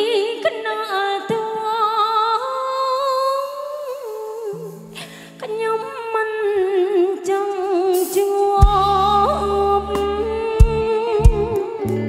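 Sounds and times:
woman singing into a microphone: 0.0 - 12.0
live band: 7.4 - 12.0.

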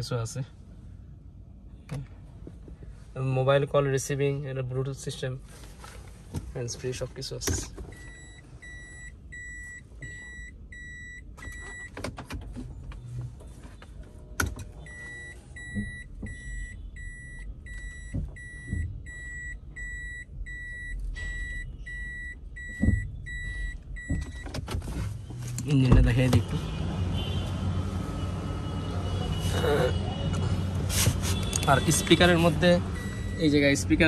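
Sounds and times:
reverse warning beeps: 8.0 - 11.9, 14.9 - 24.5, 33.0 - 33.6.

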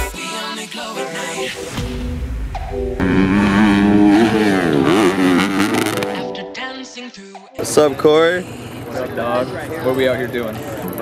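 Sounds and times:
dirt bike engine revving: 3.0 - 6.3.

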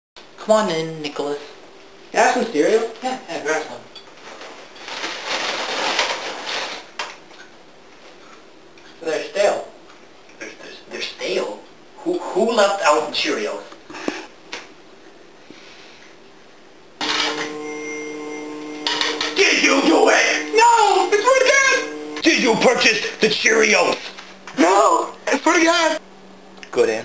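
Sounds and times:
cereal box and bag rustling: 4.2 - 6.9
loud steady held tones: 17.0 - 23.2.

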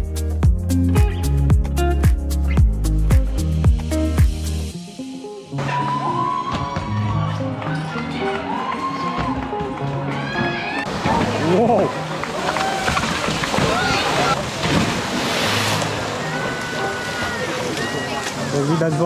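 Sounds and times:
background music: 0.0 - 19.0
crowd chattering: 9.3 - 19.0
water splashing and sloshing: 10.8 - 19.0.

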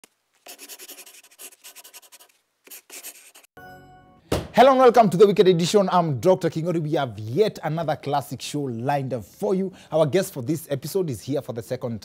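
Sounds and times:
pencil sketching on paper: 0.4 - 3.6
held musical chord: 3.6 - 4.3.

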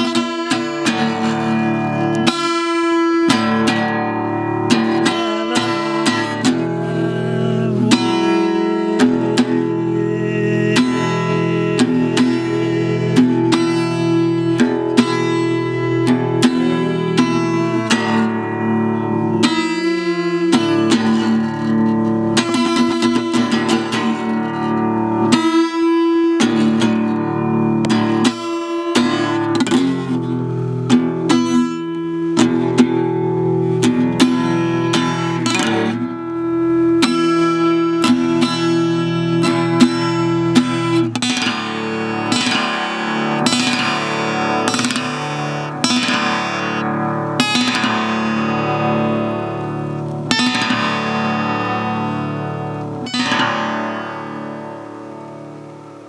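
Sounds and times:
guitars playing: 0.0 - 56.0.

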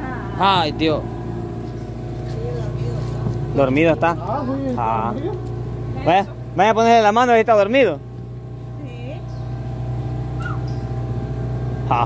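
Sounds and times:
outboard motor idling: 0.0 - 12.0.

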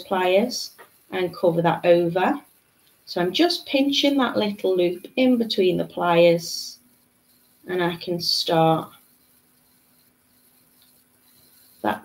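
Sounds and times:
person speaking: 0.0 - 2.5, 3.1 - 6.8, 7.7 - 8.9
faint steady hum: 0.0 - 12.0.

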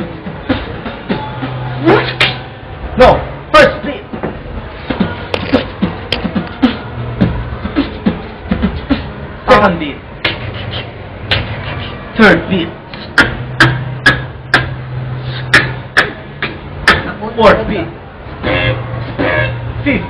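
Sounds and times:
vocal swoops falling in pitch: 0.0 - 2.8, 4.0 - 9.4
beatboxing clicks and snare hits: 1.9 - 2.4, 4.9 - 9.1, 10.2 - 12.0, 12.9 - 17.1.

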